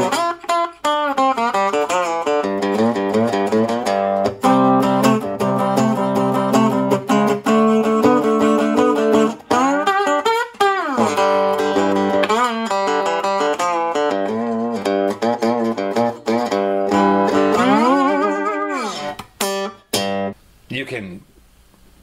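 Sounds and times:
slide guitar playing blues: 0:00.0 - 0:20.4.

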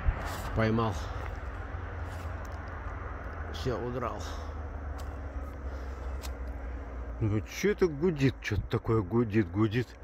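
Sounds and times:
low droning hum: 0:00.0 - 0:10.0.

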